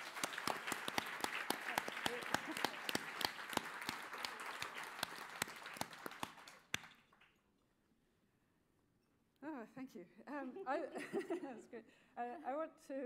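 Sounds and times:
audience applauding: 0.0s - 7.3s.

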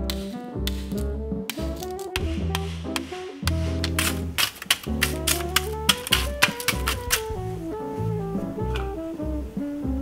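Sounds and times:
spoon cracking toffee: 0.0s - 7.3s
background music with bass: 0.0s - 10.0s.

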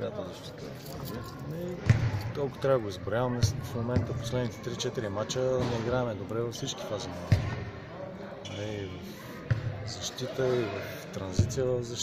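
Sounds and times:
basketball bouncing on floor: 1.8s - 2.2s, 7.3s - 7.6s.

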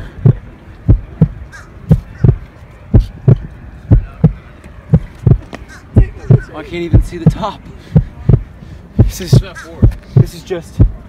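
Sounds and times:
heartbeat thumps: 0.0s - 11.0s.

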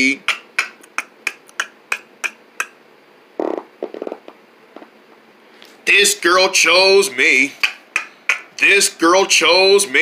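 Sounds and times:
finger snaps keeping a beat: 0.2s - 2.8s, 7.6s - 8.6s.

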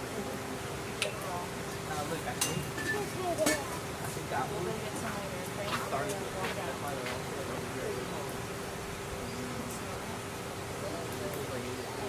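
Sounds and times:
distant voices chattering: 0.0s - 12.0s.

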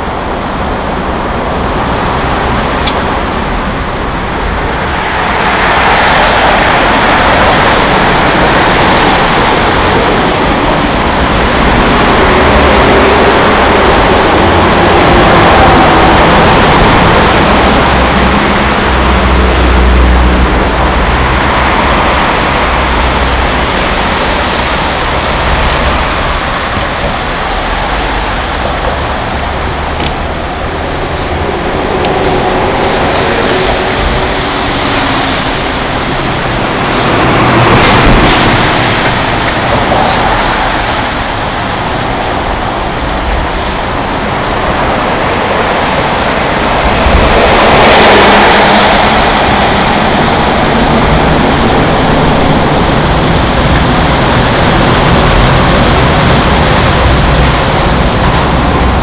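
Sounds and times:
road traffic rumble: 0.0s - 59.0s.

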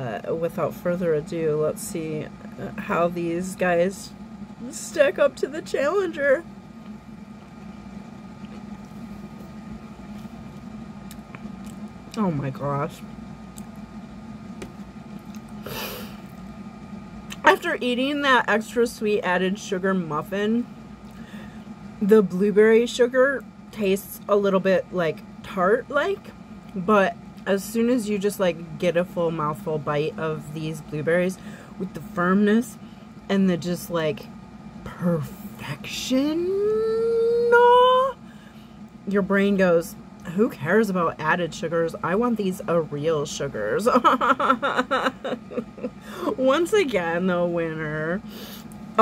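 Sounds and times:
steady low hum: 0.0s - 49.0s
chewing blueberries: 8.4s - 12.2s, 15.1s - 15.6s.

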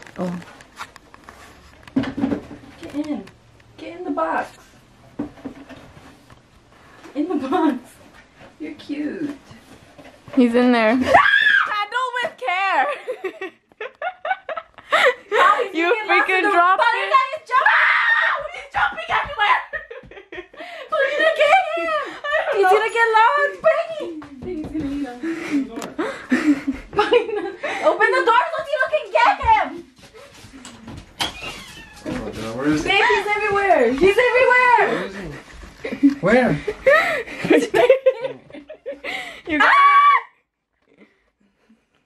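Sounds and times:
woman squealing: 11.0s - 11.8s, 39.5s - 40.4s
woman screaming: 11.0s - 11.9s, 17.1s - 18.5s, 39.5s - 40.4s
woman laughing: 19.6s - 22.7s.

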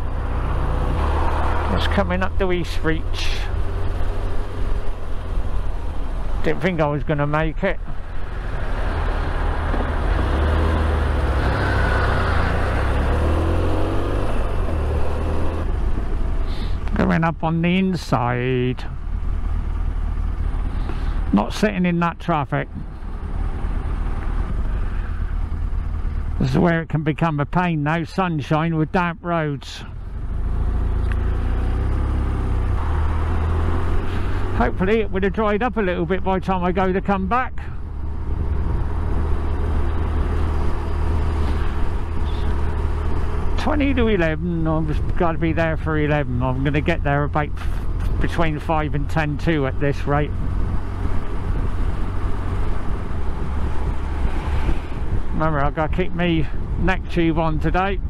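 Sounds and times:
motorcycle engine and wind rumble: 0.0s - 58.0s
tyres on wet road: 0.0s - 58.0s.

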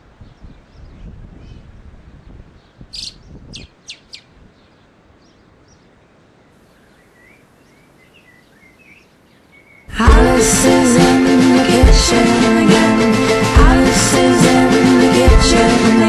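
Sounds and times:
small birds chirping: 0.1s - 10.0s
low background noise: 1.6s - 10.2s.

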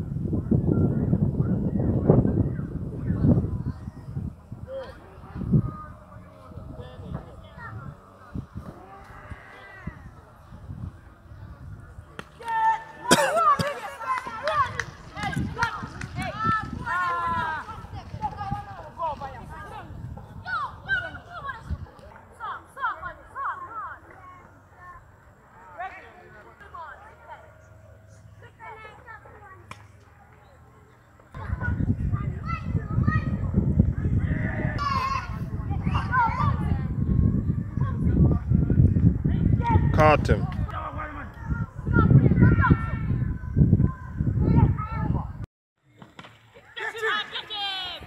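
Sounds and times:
distant players shouting: 12.0s - 21.6s
loud excited shouting: 32.2s - 36.9s.

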